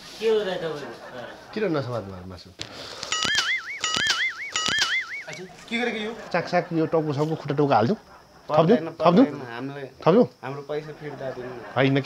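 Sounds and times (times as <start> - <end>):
sharp clicks: 2.6 - 5.5
warbling electronic comedy tone: 3.1 - 8.5.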